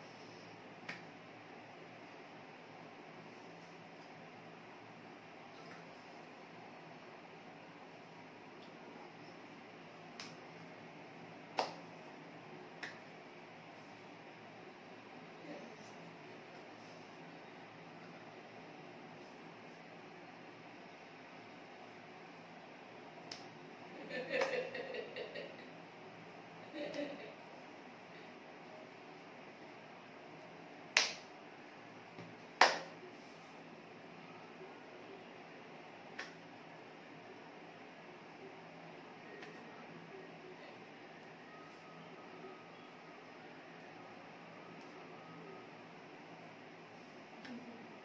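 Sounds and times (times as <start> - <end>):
faint room hiss: 0.0 - 48.0
hand slaps: 0.8 - 1.1, 10.1 - 10.5, 11.6 - 11.9, 12.8 - 13.1, 23.2 - 23.6, 30.9 - 31.3, 32.2 - 33.0, 36.2 - 36.4, 39.4 - 39.6.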